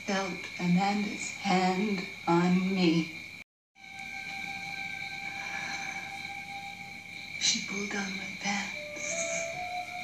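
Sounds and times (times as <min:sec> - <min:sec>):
constant high whine: 0:00.0 - 0:10.0.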